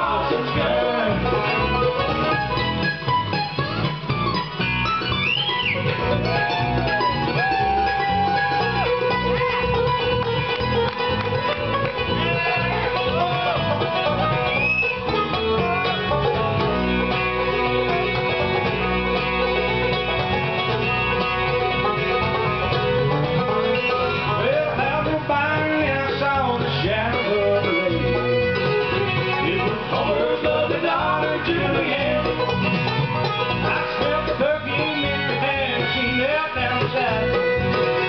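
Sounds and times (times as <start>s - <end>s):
acoustic guitar: 0.0s - 38.0s
banjo: 0.0s - 38.0s
bass: 0.0s - 38.0s
fiddle: 0.0s - 38.0s
mandolin: 0.0s - 38.0s.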